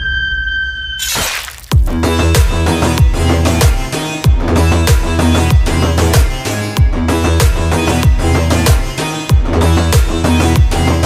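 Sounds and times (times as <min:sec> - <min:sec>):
high whistling tone: 0:00.0 - 0:01.3
glass shattering crash: 0:01.0 - 0:01.9
heavy electronic beat: 0:01.7 - 0:11.0.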